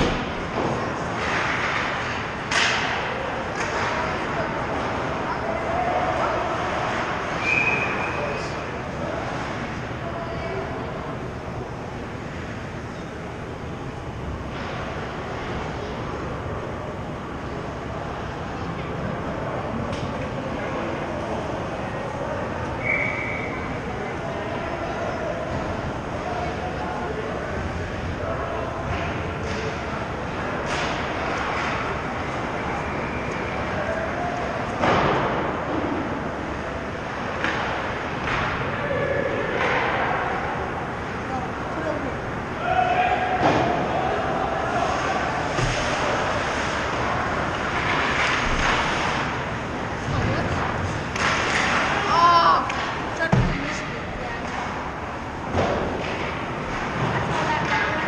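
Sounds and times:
echoing rink hum: 0.0s - 58.0s.

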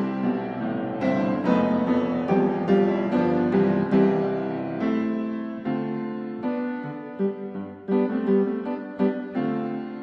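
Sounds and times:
slow gentle piano melody: 0.0s - 10.0s.

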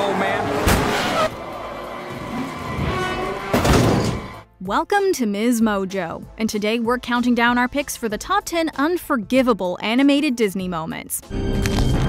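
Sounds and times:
loud car crash: 0.0s - 4.4s
race car tires skidding: 0.0s - 4.4s.

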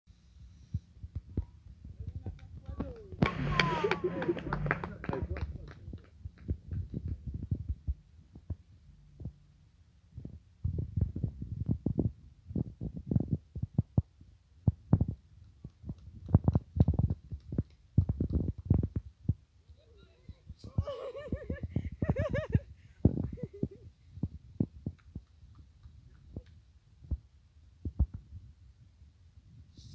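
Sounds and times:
distant voices: 2.0s - 6.5s
low thumps on microphone: 6.2s - 9.4s, 10.2s - 15.2s, 15.8s - 19.4s, 21.3s - 25.2s, 27.8s - 28.5s.

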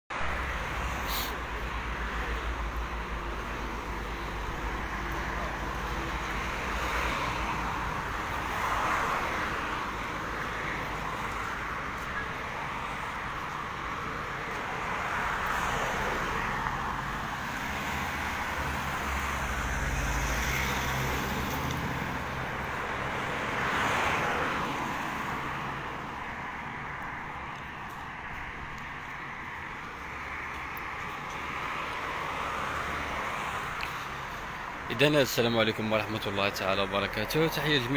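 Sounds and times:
cars passing on road: 0.1s - 37.9s.

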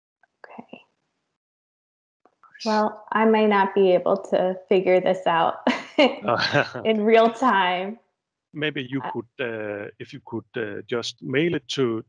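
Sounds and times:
person saying ok softly: 2.6s - 2.9s, 6.2s - 7.2s, 8.6s - 12.0s.

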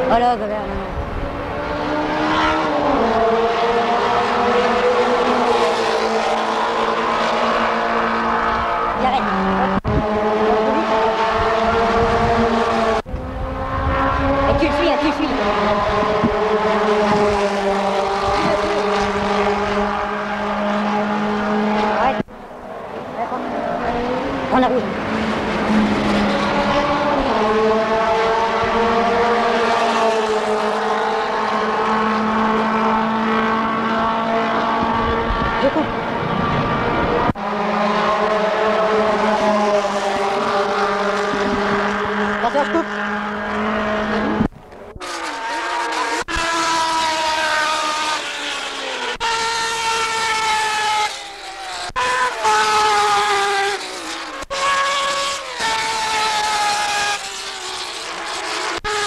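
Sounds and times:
racing car engines at high revs: 0.0s - 59.0s.

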